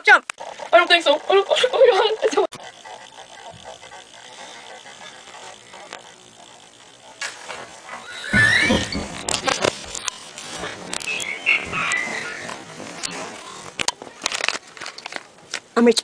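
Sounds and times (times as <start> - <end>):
rough burst with high squeal: 8.0 - 9.1.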